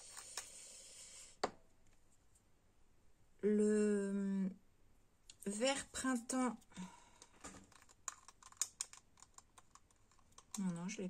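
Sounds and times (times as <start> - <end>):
paint pots clicking and tapping: 6.7 - 11.0.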